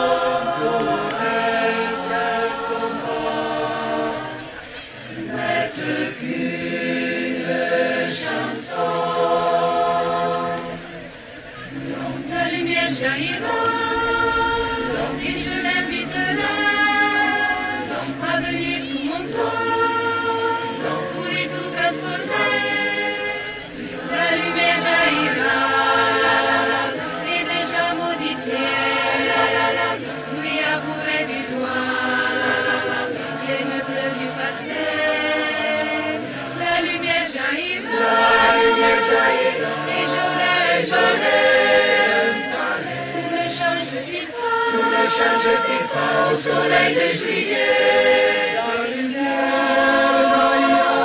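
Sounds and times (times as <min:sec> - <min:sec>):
choir singing: 0:00.0 - 0:51.0
singers breathing: 0:04.4 - 0:05.3, 0:11.0 - 0:11.6, 0:36.2 - 0:36.6.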